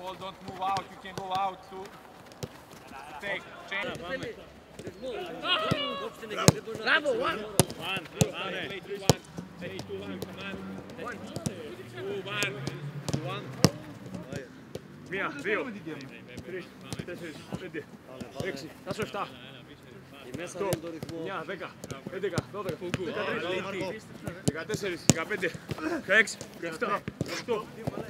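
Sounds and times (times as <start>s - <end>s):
players shouting: 2.6s - 14.5s, 20.4s - 24.0s
voices calling out: 2.7s - 15.9s.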